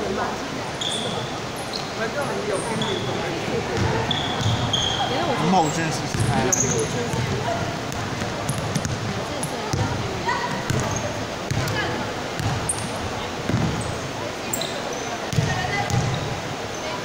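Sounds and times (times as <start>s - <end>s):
sneakers squeaking: 0.7s - 17.0s
basketball dribbling on court: 6.1s - 11.8s, 12.4s - 12.7s, 15.3s - 16.2s.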